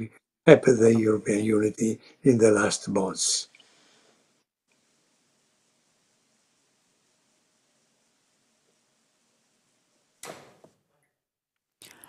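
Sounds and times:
faint steady hiss: 0.5 - 10.8.

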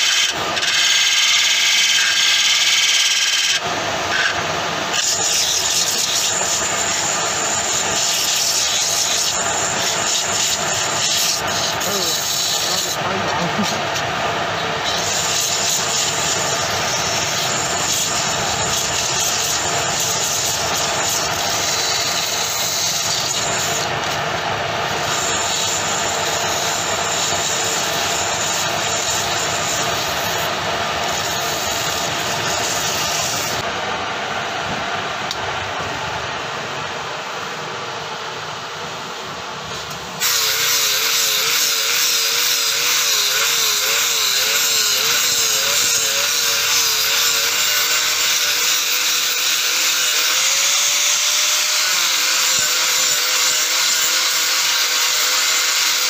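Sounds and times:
sandpaper hissing on spinning wood: 0.0 - 24.0, 24.8 - 33.6, 40.2 - 56.0
angle grinder sanding wood: 0.0 - 24.2, 24.9 - 33.7, 40.2 - 56.0
lathe motor: 0.0 - 33.7, 39.7 - 56.0.

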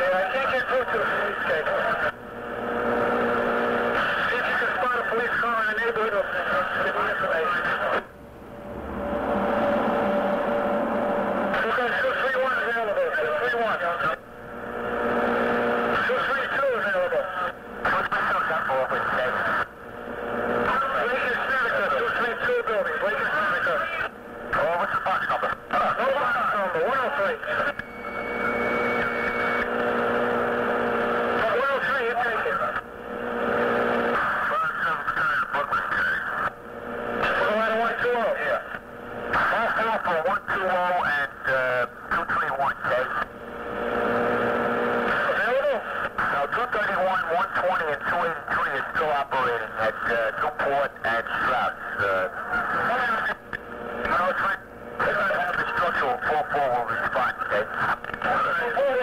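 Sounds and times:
tinny radio voices: 0.0 - 8.1, 11.3 - 59.0
short high steady tone: 27.7 - 29.7.

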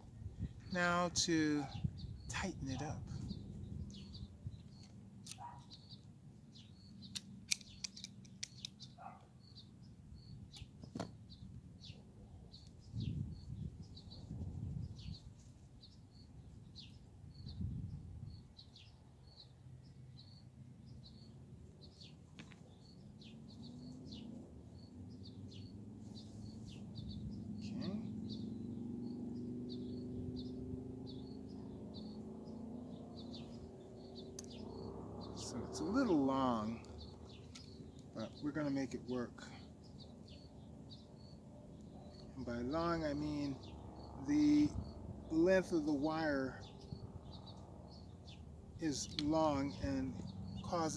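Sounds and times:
bird chirping: 0.0 - 50.9.

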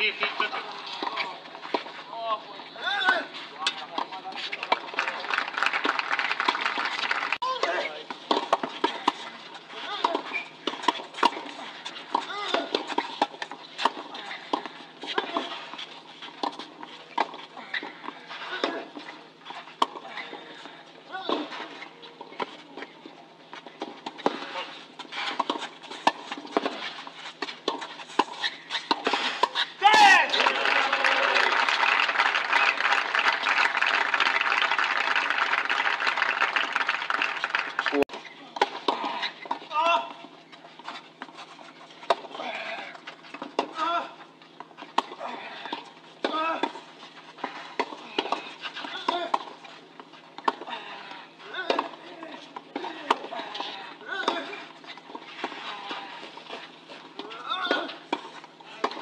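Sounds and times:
spectators applauding: 4.7 - 7.4, 30.2 - 38.0.

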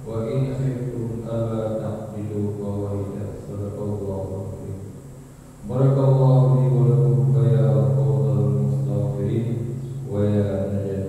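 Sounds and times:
man chanting into a microphone: 0.0 - 5.0, 5.6 - 11.0.

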